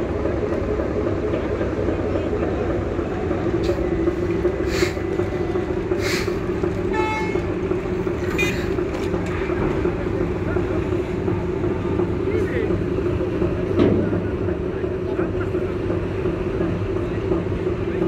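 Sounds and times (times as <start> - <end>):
diesel engines droning: 0.0 - 18.0.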